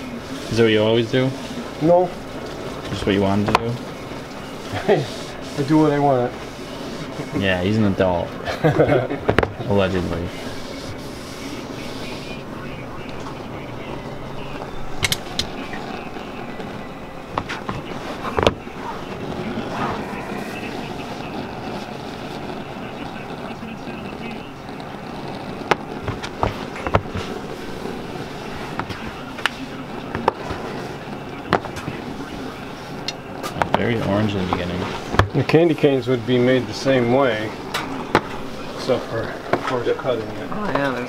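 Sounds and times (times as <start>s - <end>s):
murmured voices: 0.0s - 41.0s
room noise: 0.0s - 41.0s.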